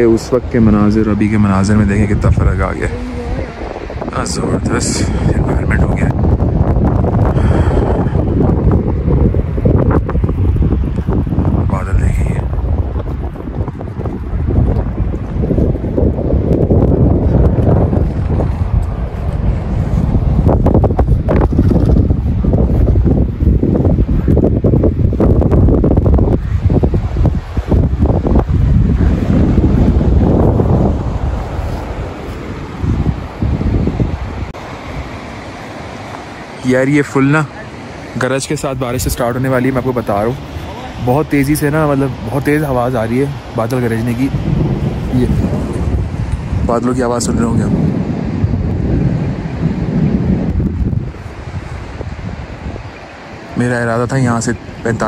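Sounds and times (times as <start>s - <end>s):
gusty wind buffeting microphone: 0.0s - 55.0s.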